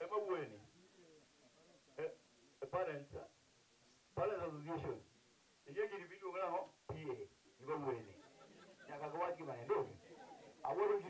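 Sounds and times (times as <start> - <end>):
man talking: 0.0 - 3.3, 4.2 - 5.1, 5.7 - 8.2, 8.8 - 11.0.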